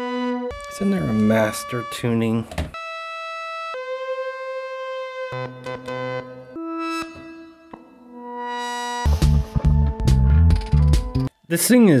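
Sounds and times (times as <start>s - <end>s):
stylophone notes: 0.0s - 3.1s.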